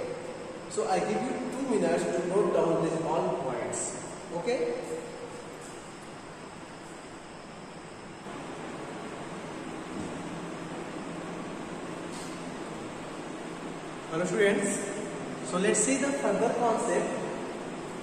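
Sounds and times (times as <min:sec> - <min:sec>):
steady background noise: 0:00.0 - 0:18.0.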